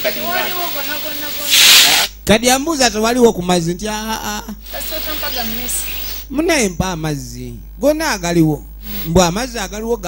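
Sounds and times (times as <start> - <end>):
sharp hissing: 1.4 - 2.2.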